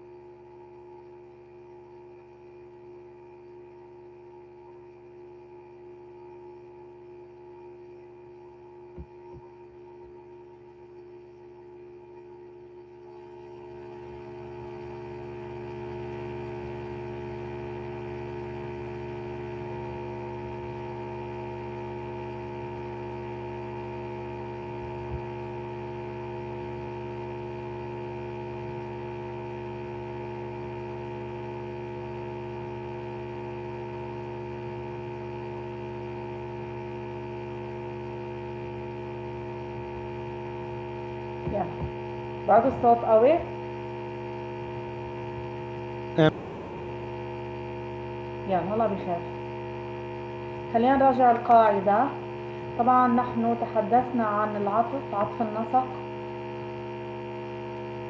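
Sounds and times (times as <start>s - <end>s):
loud electrical hum: 0.0s - 58.0s.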